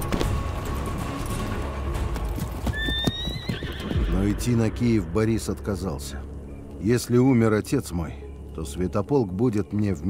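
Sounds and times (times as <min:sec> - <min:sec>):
horse hooves clip-clopping: 0:00.0 - 0:04.1
horse neighing: 0:02.7 - 0:04.2.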